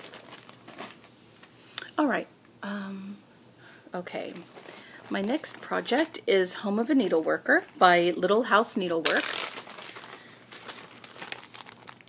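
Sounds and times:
plastic crinkling: 0.0s - 1.2s, 4.4s - 6.2s, 8.8s - 12.0s.

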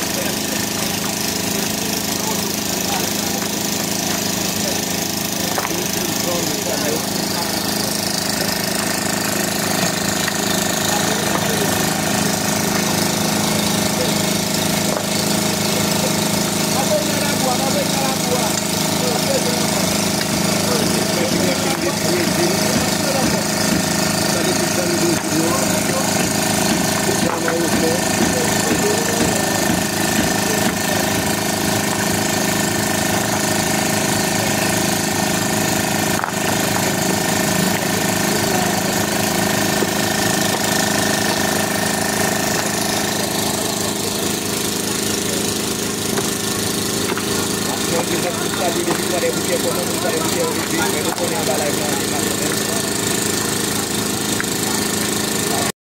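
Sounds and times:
engine running steadily: 0.0s - 55.7s
people's voices: 0.0s - 55.7s.

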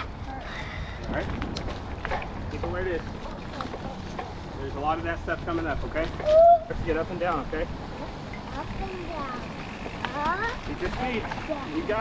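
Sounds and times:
wind buffeting microphone: 0.0s - 4.6s
bike rolling on dirt trail: 0.0s - 12.0s.

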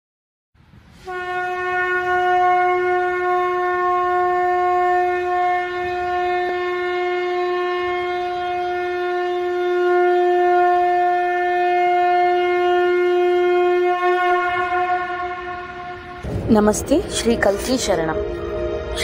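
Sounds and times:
conch shell blown: 1.0s - 16.5s, 18.1s - 19.0s.

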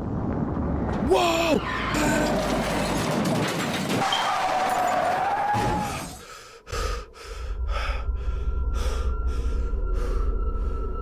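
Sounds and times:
steady low rumble: 6.7s - 11.0s.

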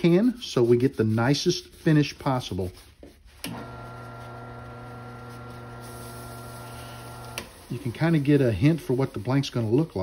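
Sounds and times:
lathe motor humming: 3.4s - 7.9s.

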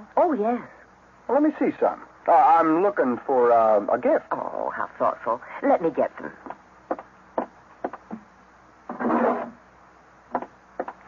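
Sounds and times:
knocks and clicks on wood: 6.4s - 8.2s, 10.3s - 11.0s
drawer sliding open: 8.9s - 9.6s.

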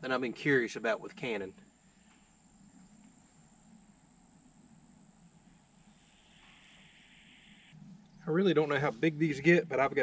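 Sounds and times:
high-pitched insect trill: 2.4s - 8.3s.

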